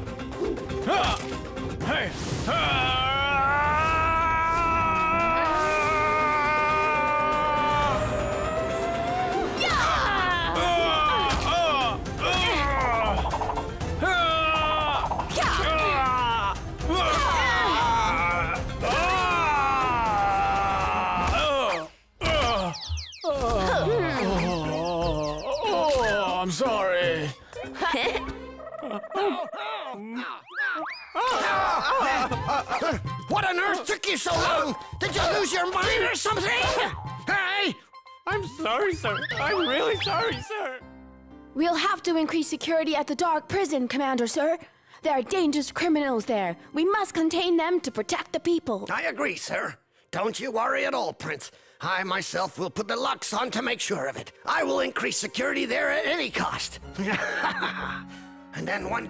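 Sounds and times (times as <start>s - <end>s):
cartoon character vocal sounds: 21.3s - 26.2s.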